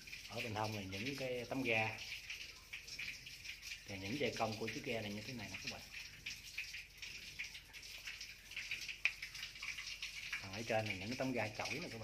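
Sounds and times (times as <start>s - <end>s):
water trickling and dripping: 0.0s - 12.0s.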